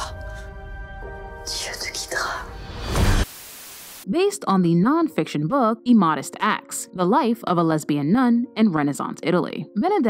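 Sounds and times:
whispered vocal sounds: 1.5 - 2.6.

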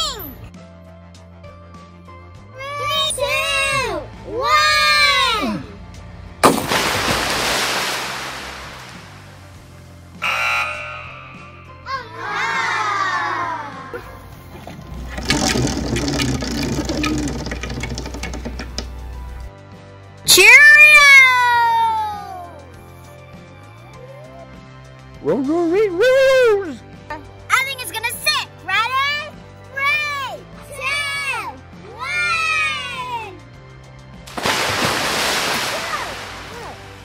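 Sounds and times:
background music: 0.0 - 37.0
children's voices: 2.6 - 5.6
toy splashing into pool: 6.4 - 9.4, 14.6 - 19.1, 34.3 - 37.0.

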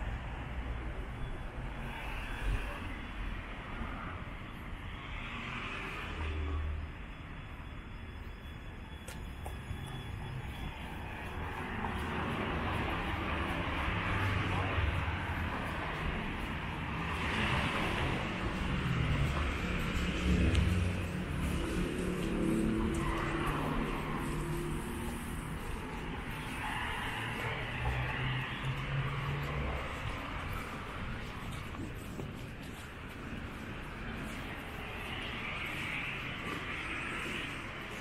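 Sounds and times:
cars driving past: 9.1 - 38.0.

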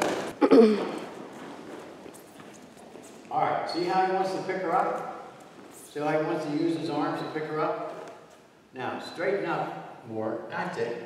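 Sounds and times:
bare feet shuffling on a mat: 0.0 - 6.2.

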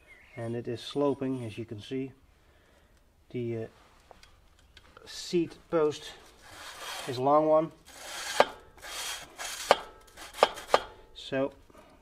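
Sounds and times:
hands rubbing bicycle seat post: 6.3 - 7.2.

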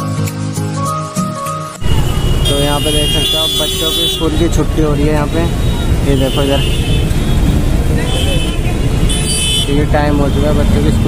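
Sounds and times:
street traffic rumble: 1.8 - 11.0.

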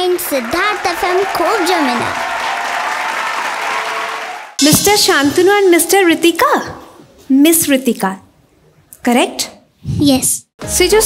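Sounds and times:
audience applause: 0.0 - 4.6.

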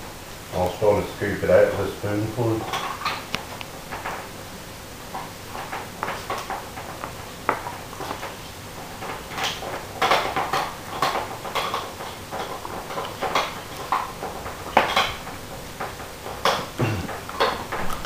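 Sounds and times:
dog gnawing a bone: 5.1 - 18.0.

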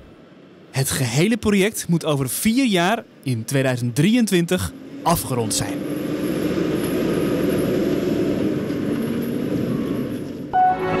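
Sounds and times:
diesel truck engine rumble: 4.0 - 10.5
short musical jingle: 10.5 - 11.0.

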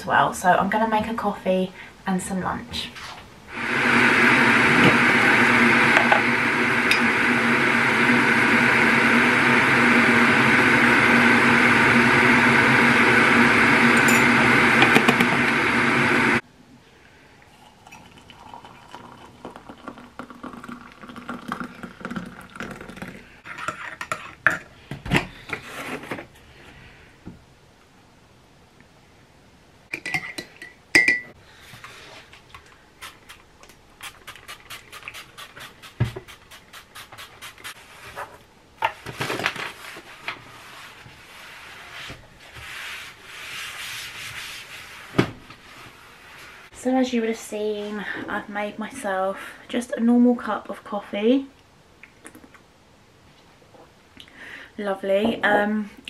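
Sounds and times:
electric kettle heating: 3.5 - 16.4, 17.4 - 23.2
hot water pouring into mug: 3.5 - 16.4, 17.5 - 23.3
spoon clinking against mug: 14.0 - 14.3, 30.0 - 31.3.

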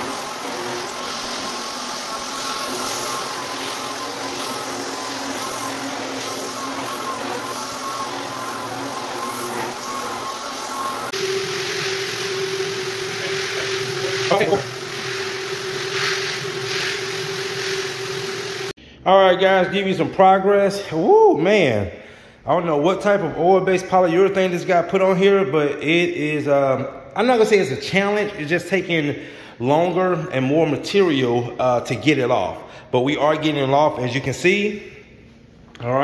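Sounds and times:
floor buffer running: 0.0 - 18.8.

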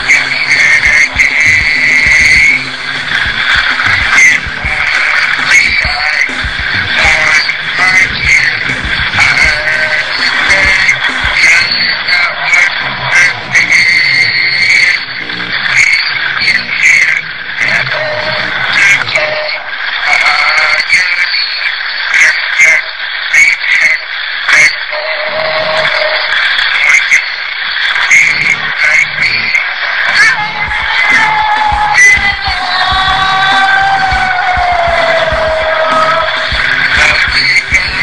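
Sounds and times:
rasping screaming vocal: 0.0 - 19.4, 28.0 - 38.0
backing track: 0.0 - 38.0.

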